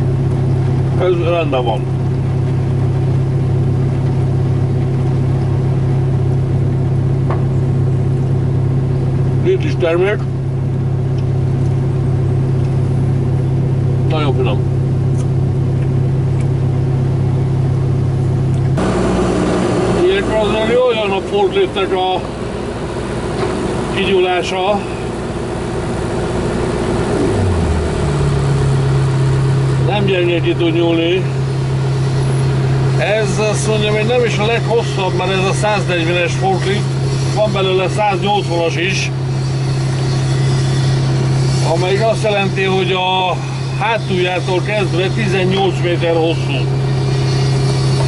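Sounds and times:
excavator diesel engine hum: 0:00.0 - 0:48.0.

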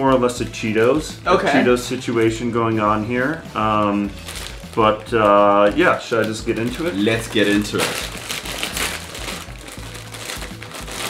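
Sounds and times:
plastic snack bag crinkling open: 0:01.9 - 0:11.0.

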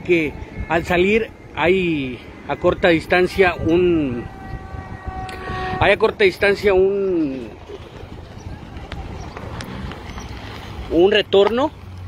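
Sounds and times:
faint voices: 0:00.0 - 0:11.6
van engine rumble: 0:03.4 - 0:12.0.

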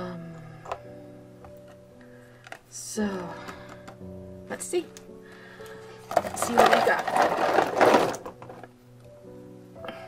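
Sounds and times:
metal paint tubes clattering: 0:06.0 - 0:08.7.

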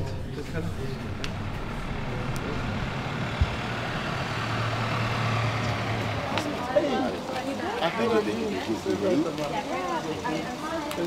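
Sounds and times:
van engine humming: 0:00.0 - 0:11.0.

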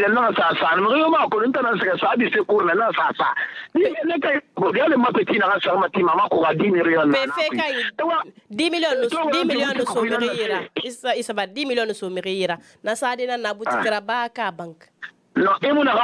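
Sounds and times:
person talking: 0:07.1 - 0:11.2, 0:13.5 - 0:16.0.

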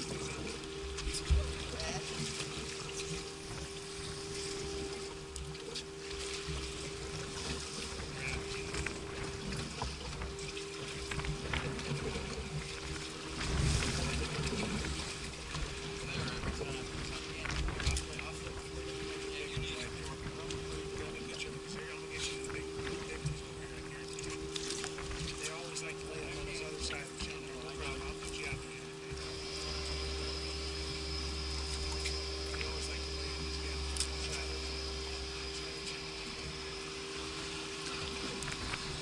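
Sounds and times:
steady hum: 0:00.0 - 0:39.0
water lapping at hull: 0:00.0 - 0:39.0.

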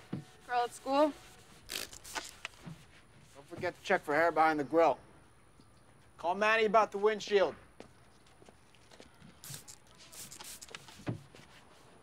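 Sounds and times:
short hissing rustles: 0:00.6 - 0:03.4, 0:09.4 - 0:11.9.

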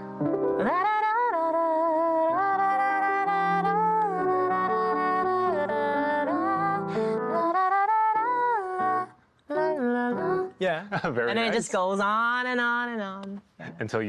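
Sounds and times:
piano chords: 0:00.0 - 0:10.6.

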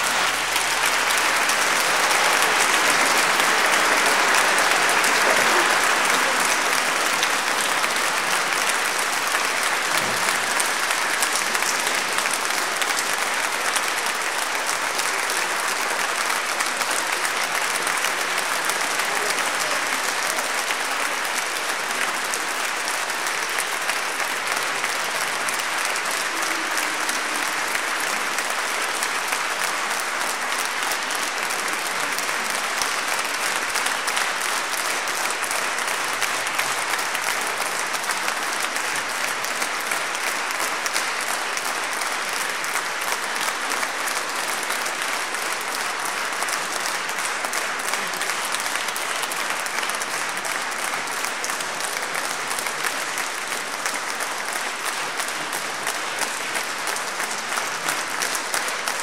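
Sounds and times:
audience applauding: 0:00.0 - 0:59.0.

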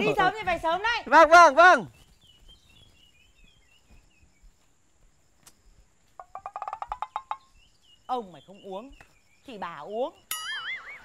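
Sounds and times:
faint bird chirping: 0:00.1 - 0:11.0.

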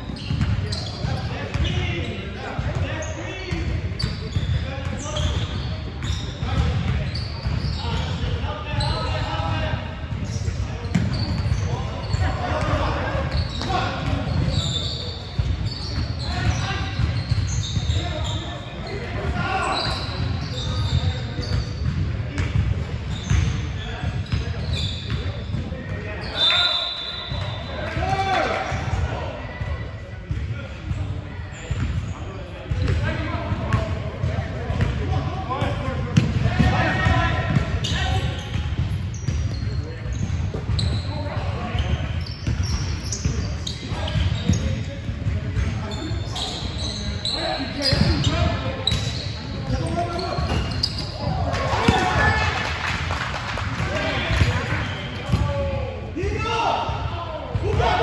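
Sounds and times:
sneakers squeaking: 0:00.0 - 0:58.0.

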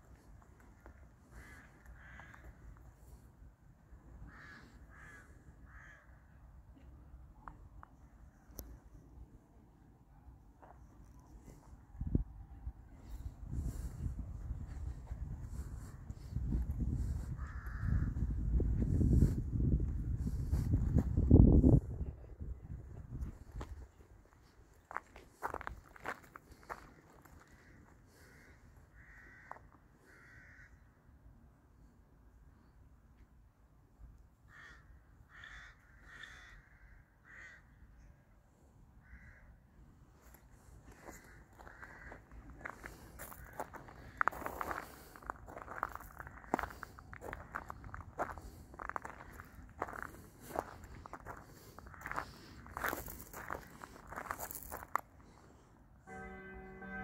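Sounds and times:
wind buffeting microphone: 0:12.0 - 0:26.8
faint footsteps: 0:23.2 - 0:28.5, 0:40.2 - 0:55.4.

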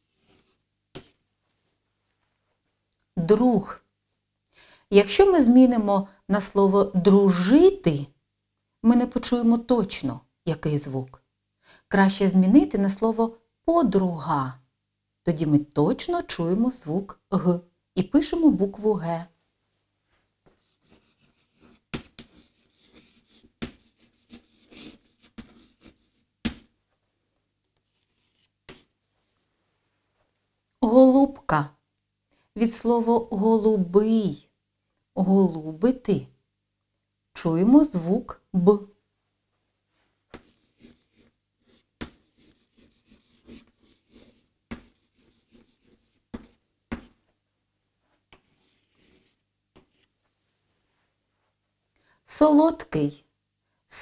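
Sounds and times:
chalk tapping on board: 0:01.0 - 0:01.2, 0:20.5 - 0:26.7, 0:28.6 - 0:28.9, 0:40.3 - 0:47.2, 0:48.3 - 0:50.1
chalk scratching on chalkboard: 0:20.5 - 0:26.8, 0:27.8 - 0:28.9, 0:40.3 - 0:47.2, 0:48.3 - 0:50.1.

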